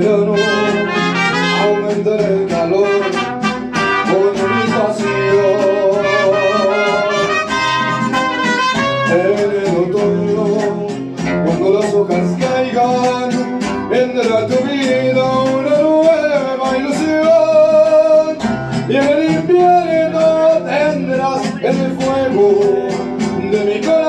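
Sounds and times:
man singing: 0:00.0 - 0:24.0
strummed guitars: 0:00.0 - 0:24.0
trumpets playing: 0:00.2 - 0:09.6.

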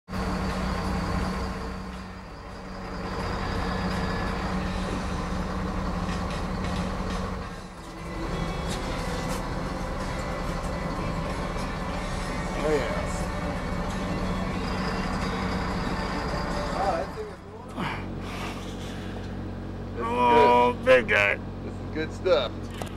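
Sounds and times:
boat engine droning: 0:00.1 - 0:22.9.

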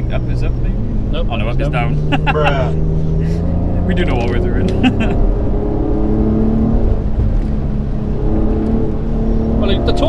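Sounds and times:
car engine from inside cabin: 0:00.0 - 0:10.0.

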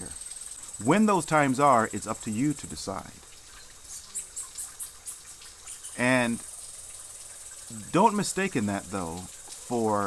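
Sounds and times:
crickets chirping: 0:00.0 - 0:10.0
waterfall trickling and splashing: 0:00.0 - 0:10.0.

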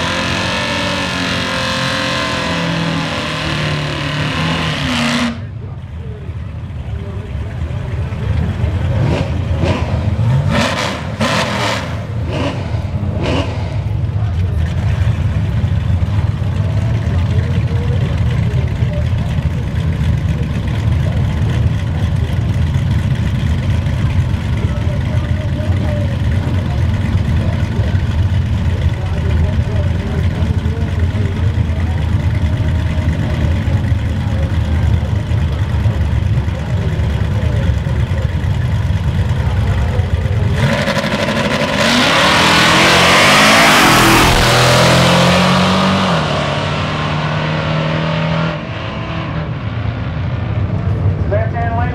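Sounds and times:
race car engines idling loudly: 0:00.0 - 0:51.9
engine revving in sharp bursts: 0:08.9 - 0:14.0, 0:40.5 - 0:49.4.

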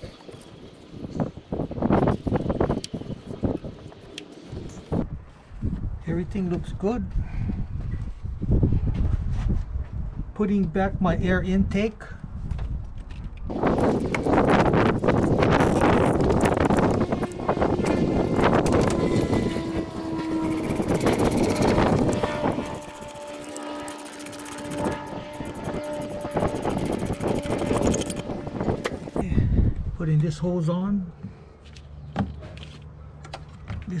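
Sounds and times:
plastic rustling and scraping: 0:17.9 - 0:29.0.

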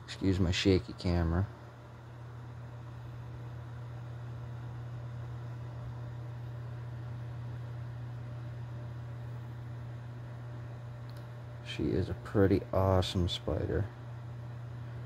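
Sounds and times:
low room hum: 0:00.0 - 0:15.0.

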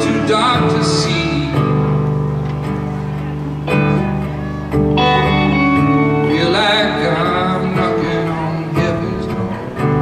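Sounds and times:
guitars playing chords: 0:00.0 - 0:10.0.

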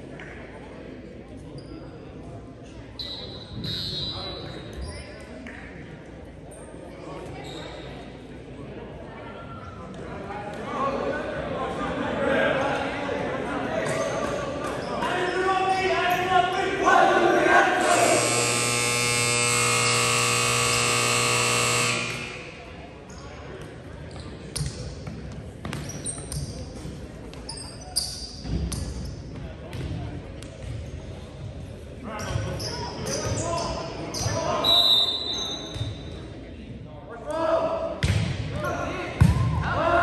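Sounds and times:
players' voices: 0:00.0 - 0:40.0
scoreboard buzzer: 0:17.8 - 0:22.7.

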